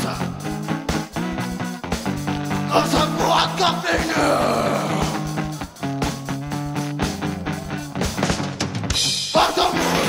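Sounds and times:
distorted electric guitar chords: 0:00.0 - 0:10.0
drum kit: 0:00.0 - 0:10.0.

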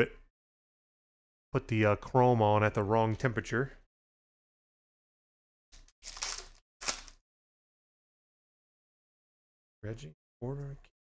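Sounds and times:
foil wrapper tearing: 0:05.8 - 0:07.2.

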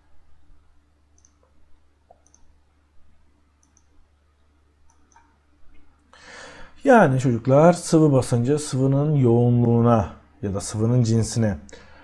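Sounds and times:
faint low hum: 0:00.0 - 0:12.0
computer mouse clicks: 0:01.2 - 0:02.5, 0:03.6 - 0:04.0, 0:04.9 - 0:05.4.

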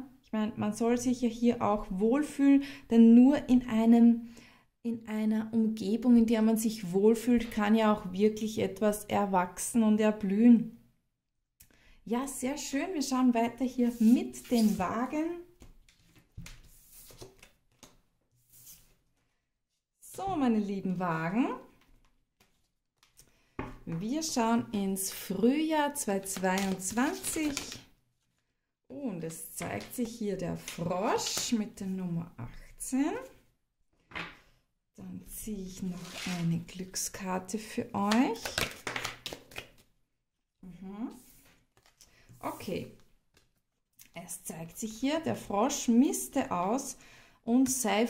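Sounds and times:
woman's voice: 0:00.0 - 0:04.3, 0:04.9 - 0:10.8, 0:12.1 - 0:15.6, 0:20.0 - 0:21.7, 0:23.8 - 0:27.9, 0:28.9 - 0:33.4, 0:35.0 - 0:38.6, 0:40.6 - 0:41.3, 0:42.4 - 0:43.0, 0:44.1 - 0:48.0
cards being shuffled: 0:15.6 - 0:19.2, 0:26.2 - 0:28.3, 0:35.9 - 0:36.5, 0:38.1 - 0:39.9, 0:41.4 - 0:42.1.

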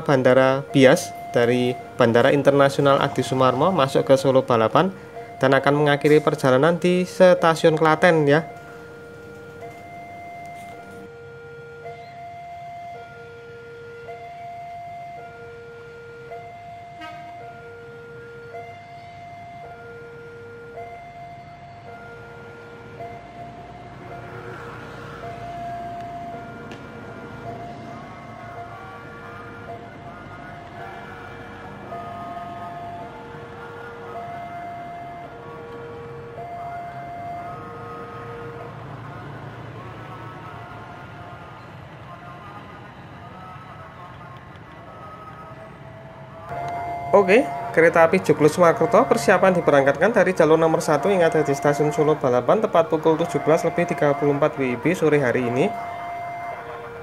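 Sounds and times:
level crossing two-tone alarm: 0:00.0 - 0:44.0, 0:44.8 - 0:57.0.

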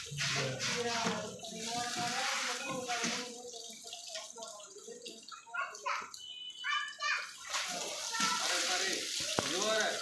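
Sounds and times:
hose water spraying and splashing: 0:00.0 - 0:04.3, 0:06.7 - 0:10.0
voices: 0:00.0 - 0:10.0.

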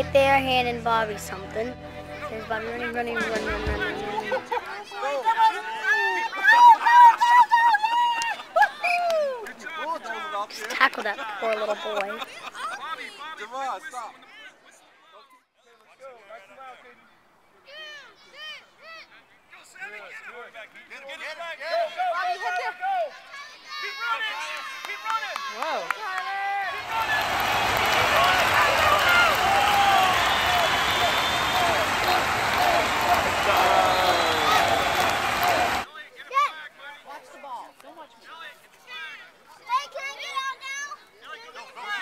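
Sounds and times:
children and adults calling out: 0:17.6 - 0:19.1, 0:22.0 - 0:27.1.

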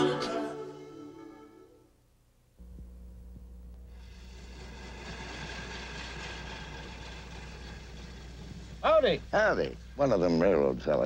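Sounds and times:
low hum: 0:00.4 - 0:10.6
rail motorcar engine and wheels: 0:04.0 - 0:11.0.

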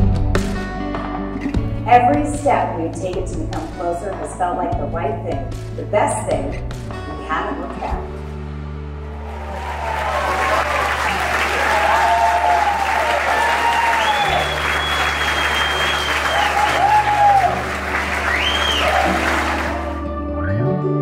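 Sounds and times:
soft background music: 0:00.0 - 0:09.4
crowd applauding and cheering: 0:09.0 - 0:20.1
people shouting: 0:09.4 - 0:14.6, 0:16.2 - 0:17.6.

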